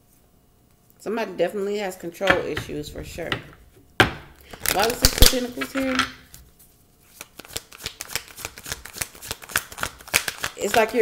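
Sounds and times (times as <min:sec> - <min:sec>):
cards being shuffled: 0:04.5 - 0:06.4, 0:07.0 - 0:11.0.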